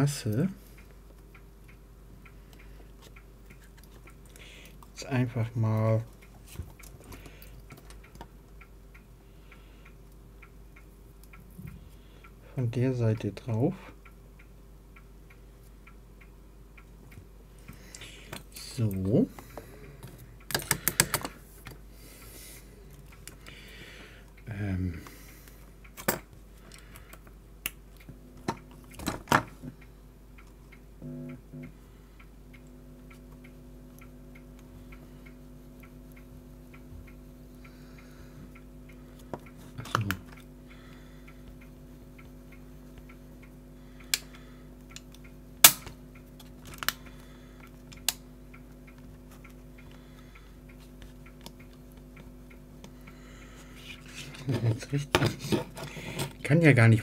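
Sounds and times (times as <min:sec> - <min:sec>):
person speaking: 0:00.0 - 0:00.7, 0:04.4 - 0:06.2, 0:17.9 - 0:20.2, 0:24.4 - 0:25.2, 0:39.6 - 0:40.4, 0:53.8 - 0:57.0
steady low hum: 0:00.0 - 0:57.0.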